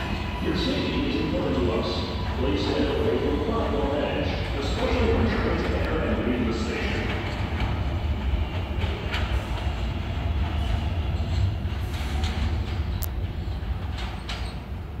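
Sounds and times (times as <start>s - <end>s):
subway train rumbling in tunnel: 0.0s - 15.0s.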